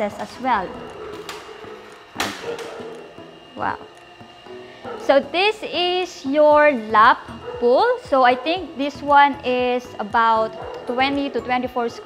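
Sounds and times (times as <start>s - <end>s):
quiet background music: 0.0s - 12.0s
sliding glass door opening: 1.1s - 3.0s.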